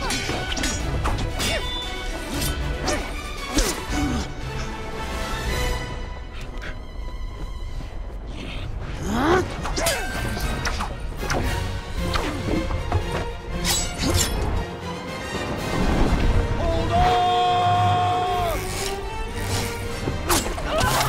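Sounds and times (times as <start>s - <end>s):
action film music: 0.0s - 21.0s.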